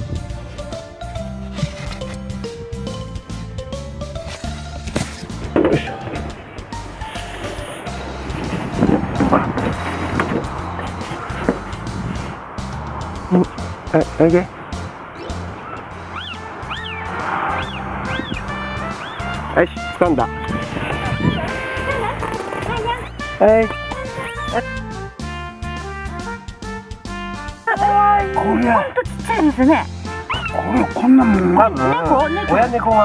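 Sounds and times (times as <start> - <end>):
background music: 0.0 - 33.0.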